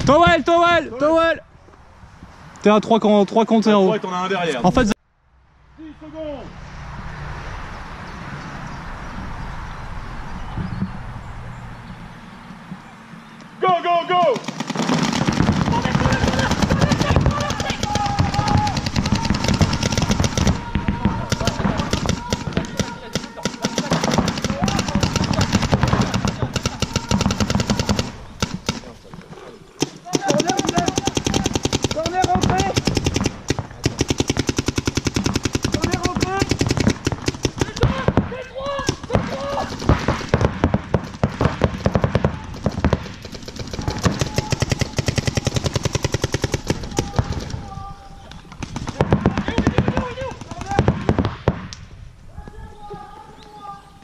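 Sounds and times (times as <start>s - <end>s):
paintball markers firing rapidly: 14.3s - 28.9s, 29.8s - 38.1s, 38.8s - 47.6s, 48.5s - 51.3s.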